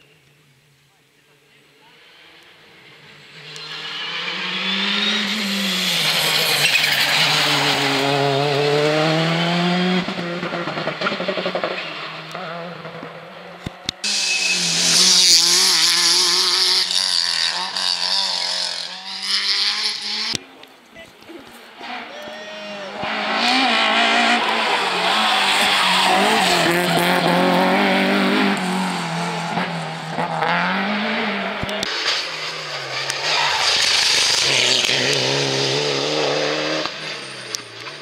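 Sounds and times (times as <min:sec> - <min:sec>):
rally car engine revving: 0:01.8 - 0:20.7, 0:21.7 - 0:38.0.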